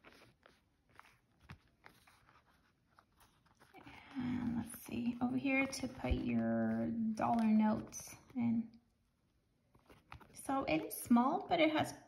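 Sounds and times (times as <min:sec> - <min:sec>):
wallet being handled: 0:00.0 - 0:11.5.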